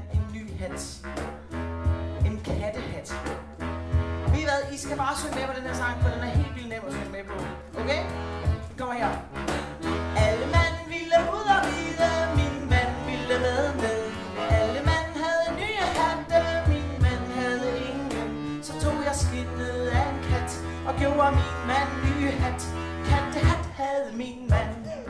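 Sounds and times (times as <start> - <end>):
accordion: 0.0 - 25.0
cajon beat: 0.0 - 25.0
woodwind melody: 9.1 - 23.7.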